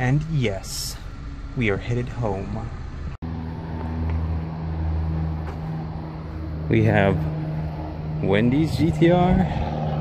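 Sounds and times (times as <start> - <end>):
car engine idling: 0.0 - 9.6.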